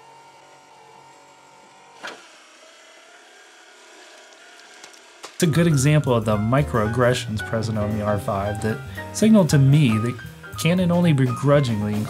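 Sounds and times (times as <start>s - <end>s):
small electric motor whirring: 0.0s - 5.4s.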